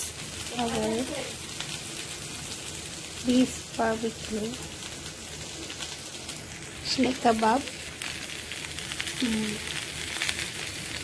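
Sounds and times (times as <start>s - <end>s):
meat sizzling on grill: 0.0s - 11.0s.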